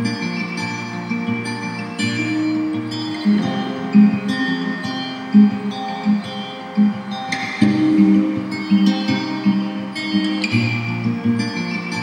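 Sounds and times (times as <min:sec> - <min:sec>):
plucked guitar music: 0:00.0 - 0:12.0.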